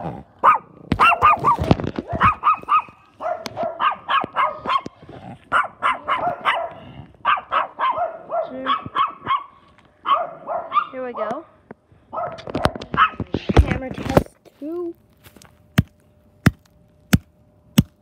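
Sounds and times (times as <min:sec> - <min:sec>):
small dog barking: 0:00.4 - 0:11.3, 0:12.1 - 0:13.2.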